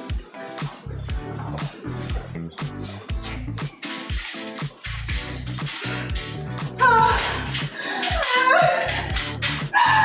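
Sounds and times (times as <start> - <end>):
upbeat music with drum beat: 0.0 - 9.9
woman wailing: 6.8 - 10.0.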